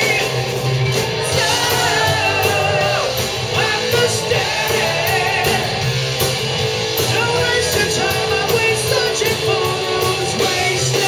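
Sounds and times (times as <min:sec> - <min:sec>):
male singer singing: 0:00.0 - 0:00.6, 0:01.2 - 0:05.8, 0:07.0 - 0:11.0
bass guitar: 0:00.0 - 0:11.0
distorted electric guitars: 0:00.0 - 0:11.0
drums with cymbals: 0:00.0 - 0:11.0.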